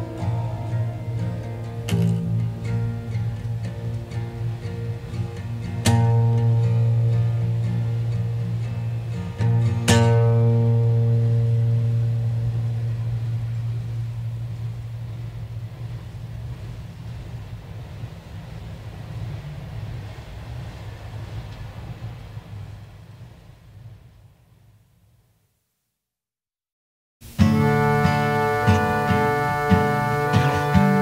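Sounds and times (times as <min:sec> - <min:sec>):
acoustic guitar chord ringing: 0:00.0 - 0:15.6, 0:27.2 - 0:31.0
low hum and hiss: 0:00.0 - 0:26.0, 0:27.2 - 0:31.0.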